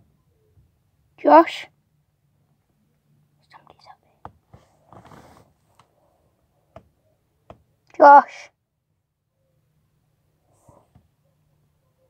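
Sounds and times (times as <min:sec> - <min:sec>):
faint whispering: 0:03.4 - 0:04.3.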